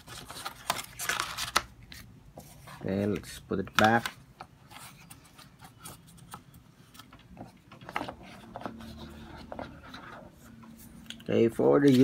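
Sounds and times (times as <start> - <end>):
cardboard and paper rustling: 0.0 - 11.0, 11.6 - 12.0.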